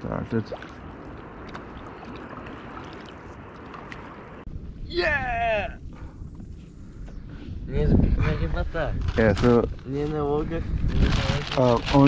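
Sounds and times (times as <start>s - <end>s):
water lapping around kayak: 0.0s - 4.5s.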